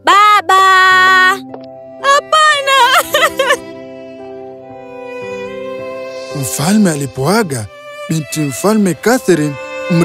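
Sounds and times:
narrator speaking: 0:06.3 - 0:10.0.

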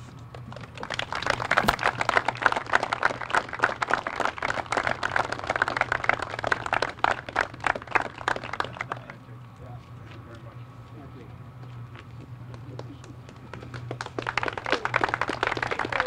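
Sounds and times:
crowd applauding: 0:00.3 - 0:09.4, 0:12.5 - 0:16.0.

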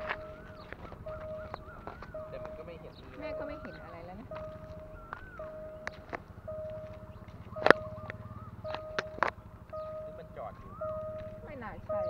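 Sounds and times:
level crossing alarm tone: 0:00.0 - 0:12.0
sharp clicks: 0:04.3 - 0:11.4.

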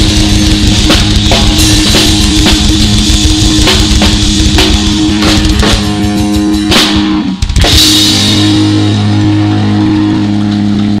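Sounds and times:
drum hits: 0:00.0 - 0:09.1
band holding final low note: 0:00.0 - 0:11.0.

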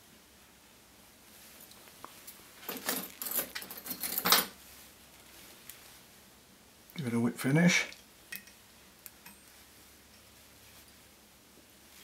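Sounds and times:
metal tools clinking: 0:02.6 - 0:04.6.

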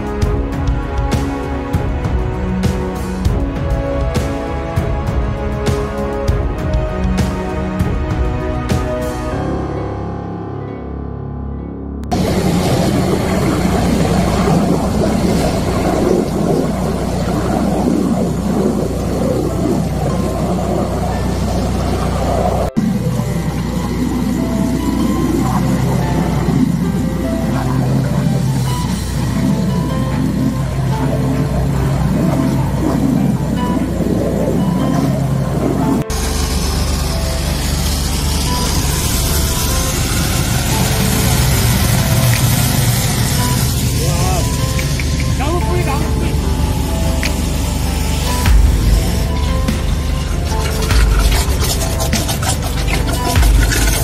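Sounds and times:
background music: 0:00.0 - 0:54.0
high-pressure drain jetter running: 0:12.1 - 0:54.0.

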